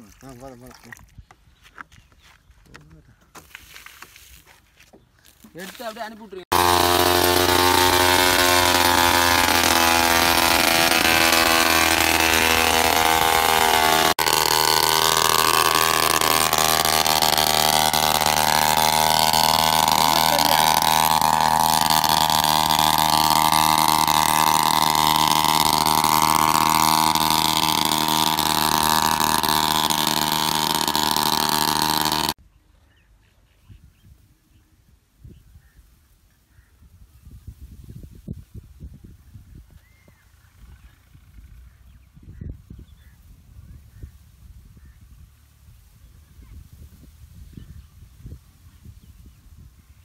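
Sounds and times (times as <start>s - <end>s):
two-stroke mist-blower engine running: 5.6s - 32.4s.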